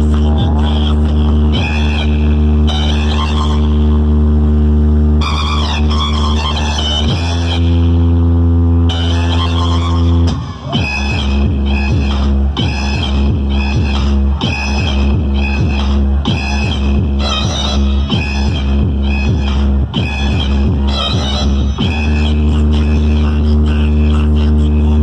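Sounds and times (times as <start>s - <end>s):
loud electronic dance music: 0.0s - 25.0s.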